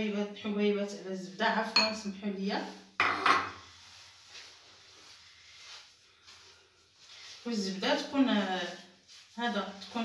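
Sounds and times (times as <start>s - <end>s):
ceramic bowl clink: 1.7s - 2.1s, 3.0s - 3.6s
hands rubbing in mixing dish: 3.6s - 10.0s.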